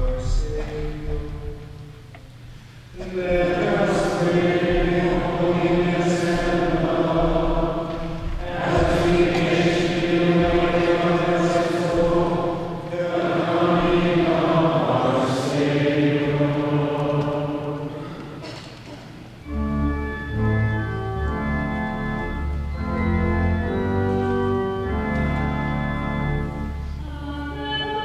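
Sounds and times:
group chanting in reverberant church: 3.0 - 19.7.

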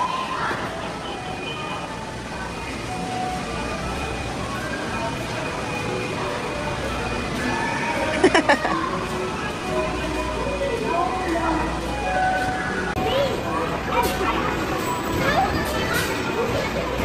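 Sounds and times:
voices in background: 0.0 - 17.0
arcade machine music and jingles: 0.9 - 17.0.

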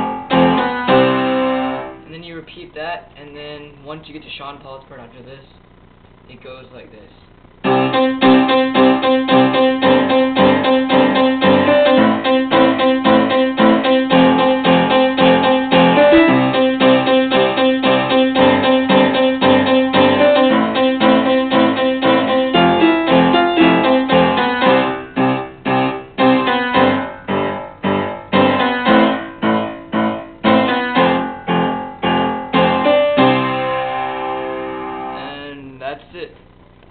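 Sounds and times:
piano chords: 0.0 - 2.5, 7.6 - 35.5.

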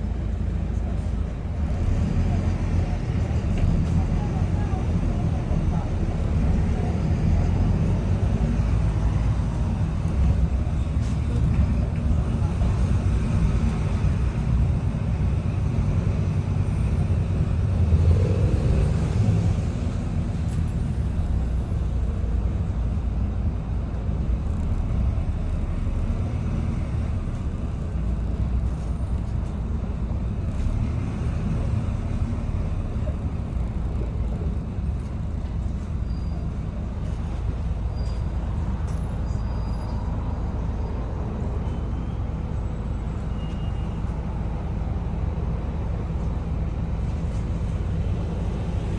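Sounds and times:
bus diesel engine drone: 0.0 - 48.9
road noise: 0.0 - 48.9.

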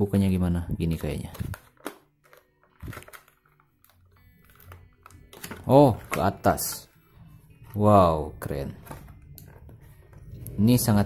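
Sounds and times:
plastic blister tray clicking and crackling: 0.9 - 6.8.

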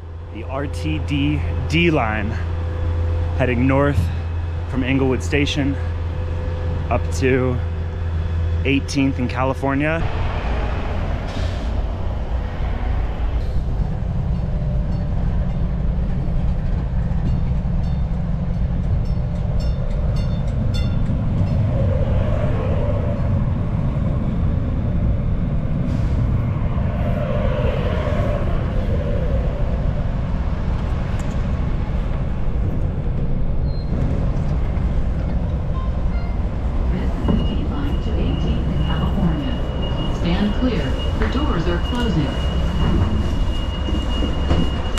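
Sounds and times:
light rail train rumbling: 0.0 - 44.9
steady high tone: 35.7 - 44.9.

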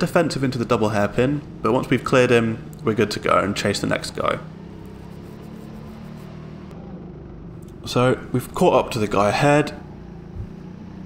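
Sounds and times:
faint tyre and wind noise: 0.0 - 11.0
go-kart engine humming: 0.0 - 11.0.

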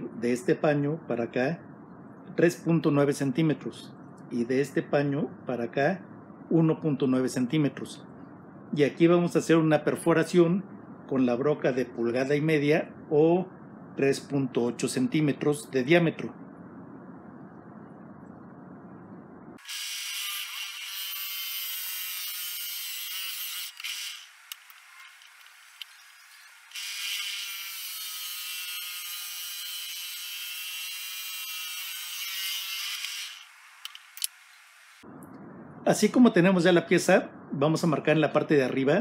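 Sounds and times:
drill press cutting wood: 23.3 - 27.7.

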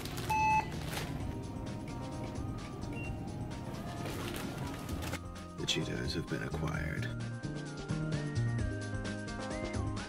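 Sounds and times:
background music: 0.0 - 10.0
barcode scanner beep: 0.3 - 0.7.

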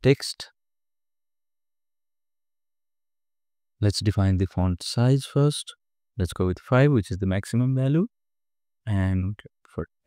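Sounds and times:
man speaking: 8.9 - 9.9.

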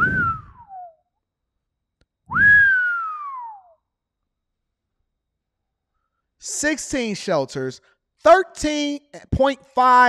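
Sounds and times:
man whistling: 0.0 - 1.1, 2.3 - 3.9.

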